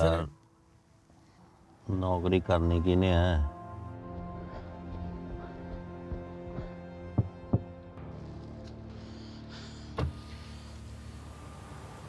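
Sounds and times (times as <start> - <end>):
low hum inside car: 6.8 - 12.0.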